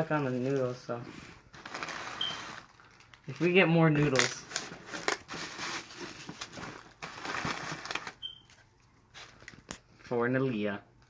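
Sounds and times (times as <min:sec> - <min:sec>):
packing wrap rustling: 0:00.0 - 0:09.9.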